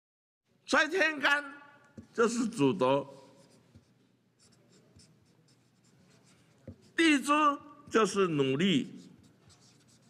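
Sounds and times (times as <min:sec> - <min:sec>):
marker pen scratching on paper: 0:03.1 - 0:10.0.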